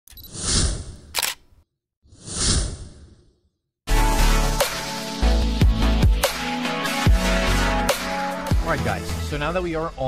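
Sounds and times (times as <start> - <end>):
sharp click: 1.1 - 1.5
electronic music: 3.9 - 9.4.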